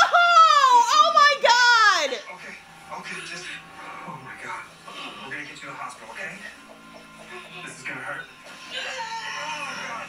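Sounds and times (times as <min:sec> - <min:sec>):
indistinct television speech: 0:00.0 - 0:10.0.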